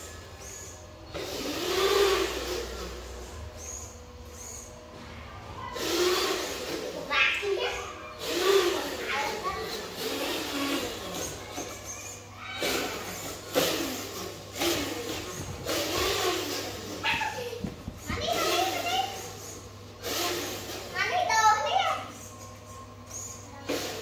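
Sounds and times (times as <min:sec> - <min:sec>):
children talking and calling out: 0:00.0 - 0:24.0
high-pitched child's call: 0:11.8 - 0:13.2, 0:21.0 - 0:22.3.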